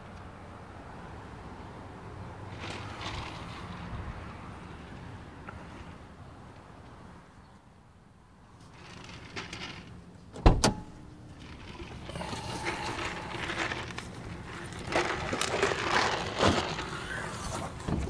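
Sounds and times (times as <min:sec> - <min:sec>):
car door shutting: 0:10.3 - 0:11.1
rustling: 0:10.8 - 0:18.0.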